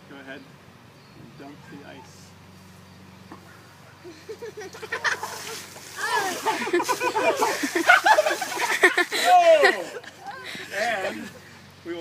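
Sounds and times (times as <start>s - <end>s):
people yelling and laughing: 4.1s - 11.5s
water splashing from bucket: 5.0s - 9.2s.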